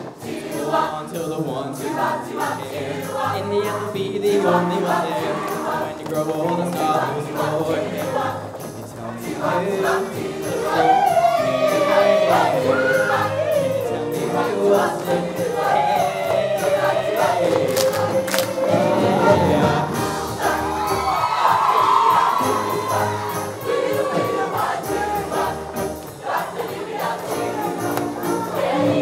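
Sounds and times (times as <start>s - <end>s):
choir singing: 0.0s - 29.0s
instrumental accompaniment: 0.0s - 29.0s.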